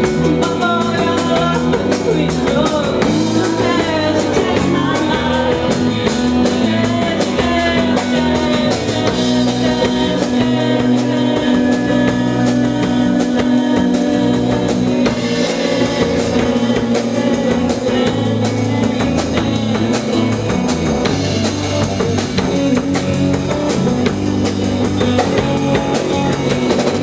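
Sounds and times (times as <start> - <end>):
drum kit beat: 0.0 - 27.0
live rock band playing: 0.0 - 27.0.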